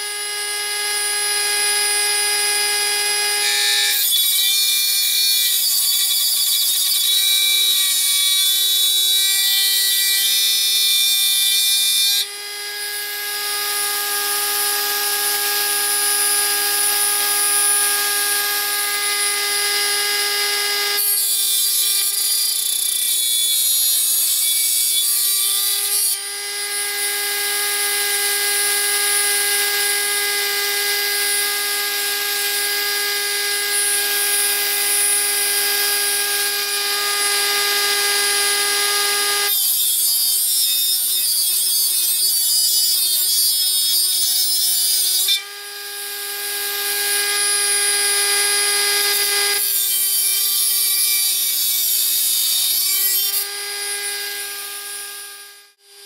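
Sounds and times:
rotary tool whine: 0.0 - 56.0.

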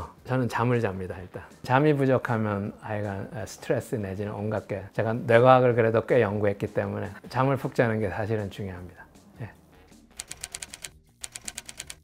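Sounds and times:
typewriter key clicks: 10.2 - 12.0.

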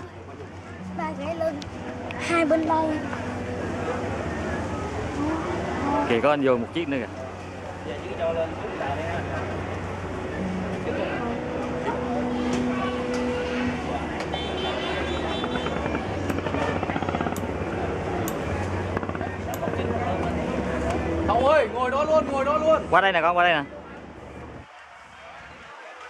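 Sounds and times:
boat engines droning: 0.0 - 26.0
people chattering: 0.0 - 26.0.

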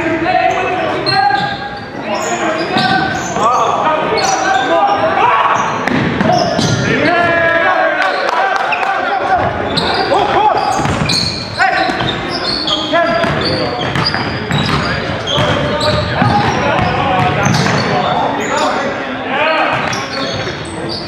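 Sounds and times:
players calling out: 0.0 - 21.0
sneaker squeaks: 0.3 - 7.3, 8.0 - 18.8, 19.5 - 21.0
basketball bouncing on wooden floor: 10.8 - 11.2, 13.1 - 17.8.

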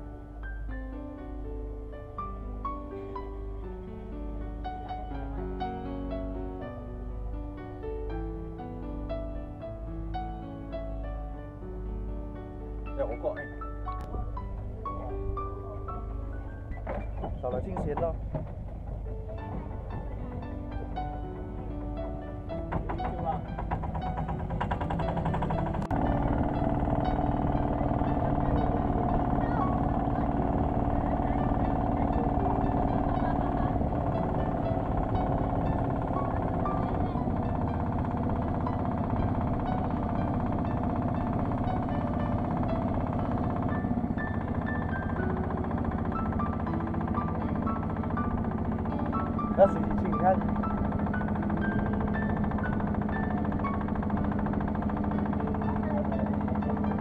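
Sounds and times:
background music: 0.0 - 57.0
boat engine running: 0.0 - 57.0
sharp knocks: 16.7 - 57.0.

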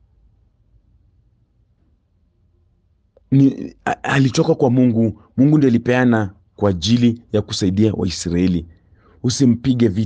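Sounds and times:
faint room hum: 0.0 - 10.0
man speaking: 3.2 - 10.0.

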